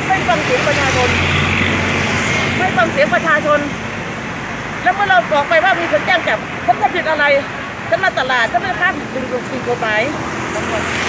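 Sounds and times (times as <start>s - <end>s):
vehicle passing close by: 0.0s - 11.0s.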